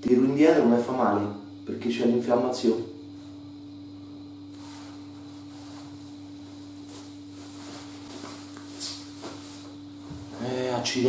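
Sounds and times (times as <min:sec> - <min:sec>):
low electrical hum: 0:00.0 - 0:11.0
rustling of clothing: 0:04.6 - 0:10.4.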